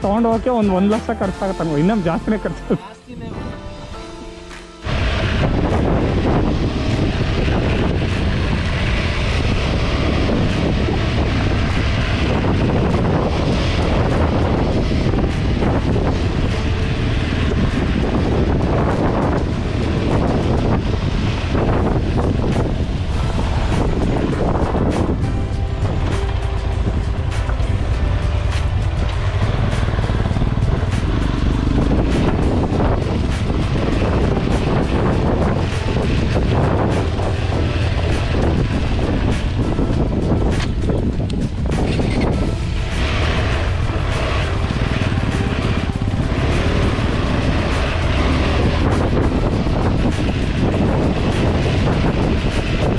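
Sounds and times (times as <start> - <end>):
wind buffeting microphone: 3.2 - 52.9
motorcycle engine running: 4.8 - 52.9.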